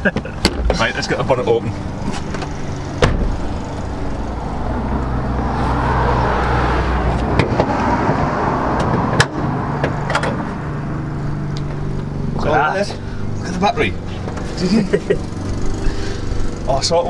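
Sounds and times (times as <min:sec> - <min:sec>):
car door shutting: 0:02.0 - 0:03.6.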